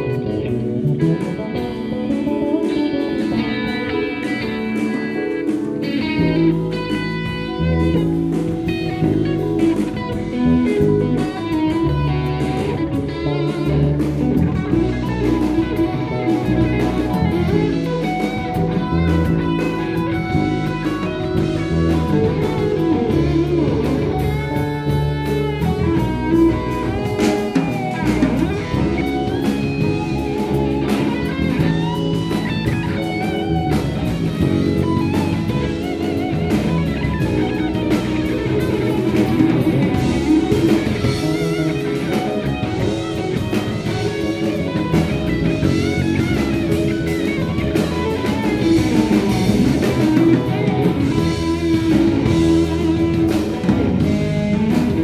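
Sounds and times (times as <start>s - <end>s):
bass: 0.0s - 55.0s
drums: 0.0s - 55.0s
electric guitar: 0.0s - 55.0s
keyboards: 0.0s - 55.0s.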